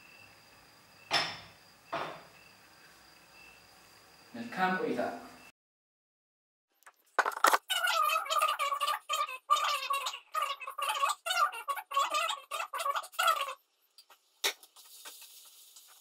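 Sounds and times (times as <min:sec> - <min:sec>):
high-pitched sped-up voice: 0:07.7 - 0:13.6.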